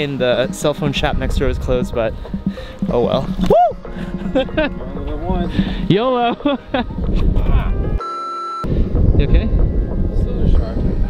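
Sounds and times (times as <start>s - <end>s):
wind buffeting microphone: 0.0s - 8.0s, 8.7s - 11.0s
steady high beep: 8.0s - 8.7s.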